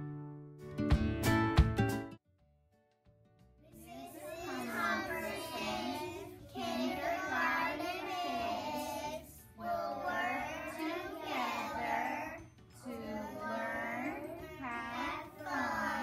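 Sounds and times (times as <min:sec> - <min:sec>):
children singing in unison: 0:04.0 - 0:16.0.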